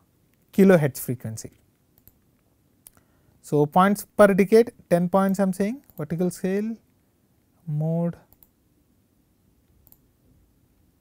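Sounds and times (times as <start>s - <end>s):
computer mouse clicks: 1.5s - 3.0s, 8.3s - 8.6s, 9.6s - 10.1s.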